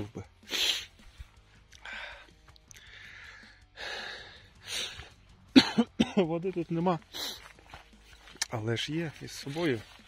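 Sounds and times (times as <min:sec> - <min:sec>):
person breathing hissily: 0:00.4 - 0:01.2, 0:01.8 - 0:05.2
sharp cough: 0:05.5 - 0:06.3.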